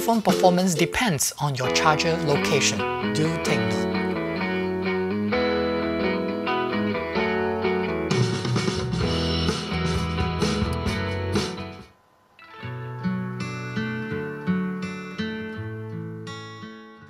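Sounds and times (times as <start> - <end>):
guitar music: 0.0 - 17.0.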